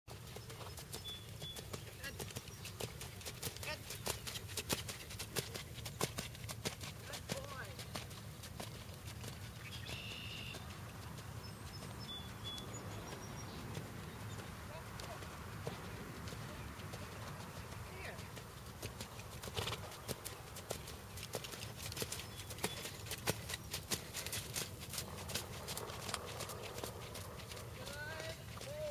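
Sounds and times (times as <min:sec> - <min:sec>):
horse hooves trotting on sand: 0:00.1 - 0:28.9.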